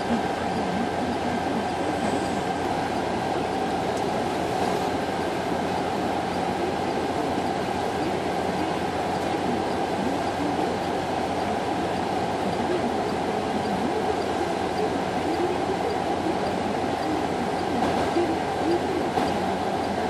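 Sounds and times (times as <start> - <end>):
faint steady whine: 0.0 - 20.0.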